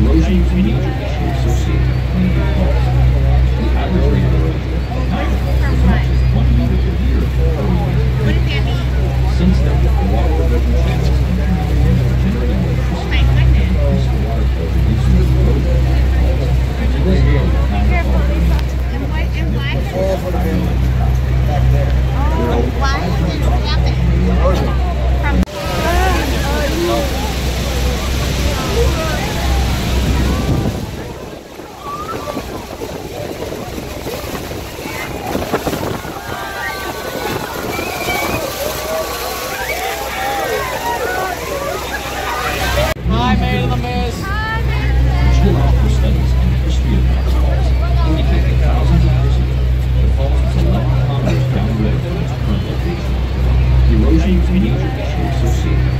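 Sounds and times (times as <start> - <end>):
waterfall rushing: 0.0 - 43.1
boat engine hum: 0.0 - 55.9
passengers chatting: 0.0 - 55.9
wind: 0.0 - 55.9.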